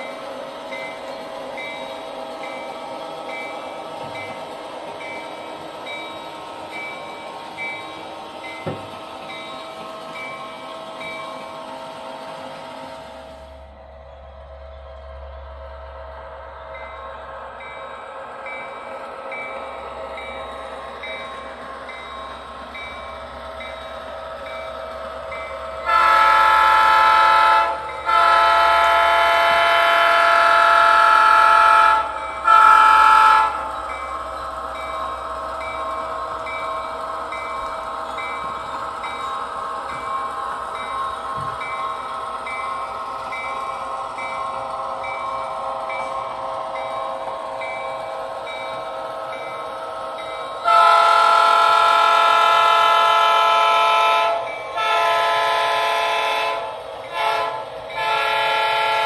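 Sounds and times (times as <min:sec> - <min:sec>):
model train running: 0:00.0 - 0:59.0
model train horn blasts: 0:25.8 - 0:33.7, 0:50.6 - 0:59.0.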